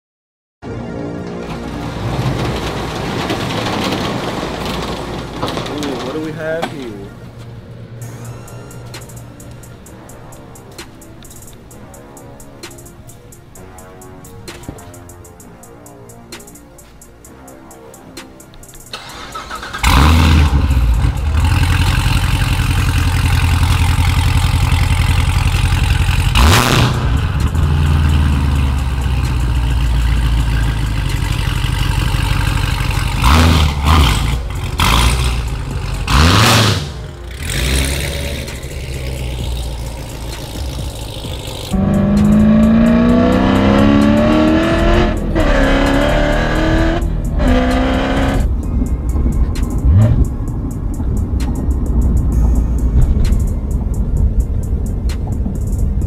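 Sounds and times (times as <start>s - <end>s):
car engine starting: 0.6s - 56.0s
engine idling with throttle blips: 18.4s - 44.1s, 46.7s - 56.0s
car accelerating through gears: 19.0s - 29.6s, 33.1s - 56.0s.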